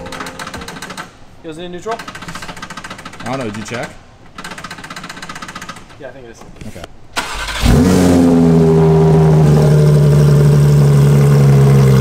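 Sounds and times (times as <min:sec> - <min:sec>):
fast mechanical rattle: 0:01.9 - 0:06.0.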